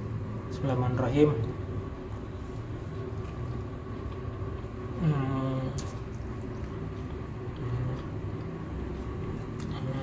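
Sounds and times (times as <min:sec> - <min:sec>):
low background hum: 0:00.0 - 0:10.0
soft chewing: 0:01.4 - 0:10.0.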